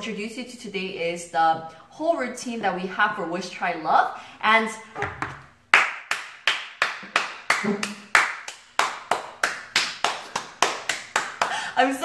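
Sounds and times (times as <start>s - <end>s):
person clapping hands: 5.8s - 11.6s.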